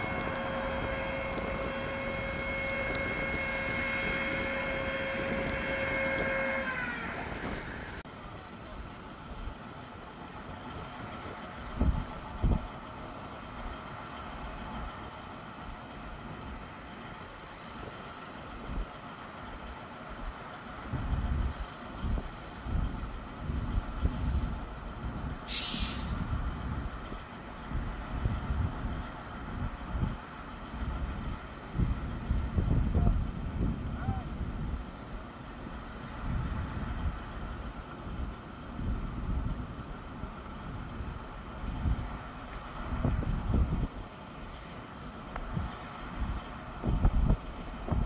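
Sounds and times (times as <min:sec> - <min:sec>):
diesel engine running: 0:00.0 - 0:48.0
wind buffeting microphone: 0:00.0 - 0:48.0
sharp hiss of air: 0:25.4 - 0:26.3.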